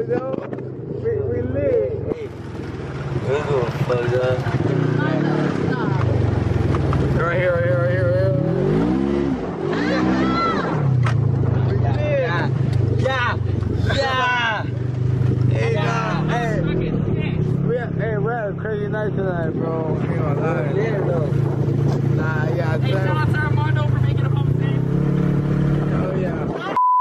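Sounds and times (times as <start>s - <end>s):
off-road vehicle engine running: 0.0s - 26.7s
people shouting: 9.7s - 10.9s, 15.6s - 16.7s.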